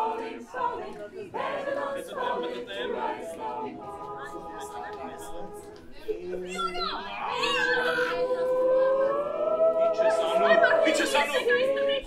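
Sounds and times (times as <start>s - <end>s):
group singing a cappella: 0.0s - 6.5s, 7.8s - 11.6s
voices chattering: 0.0s - 12.0s.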